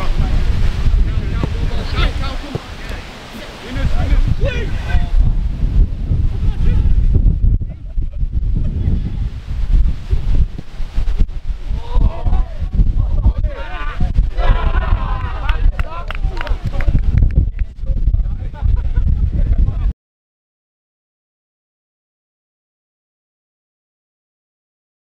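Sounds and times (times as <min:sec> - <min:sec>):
wind buffeting microphone: 0:00.0 - 0:20.0
players shouting: 0:13.3 - 0:16.7.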